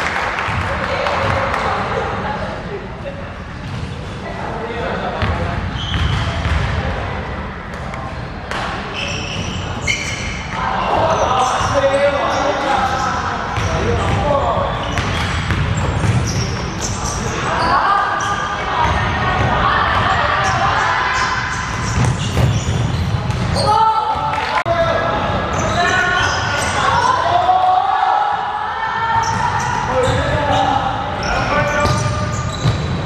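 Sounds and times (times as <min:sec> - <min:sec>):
basketball bouncing on wooden court: 0:05.2 - 0:06.8, 0:13.6 - 0:16.9, 0:21.7 - 0:23.7, 0:31.6 - 0:33.0.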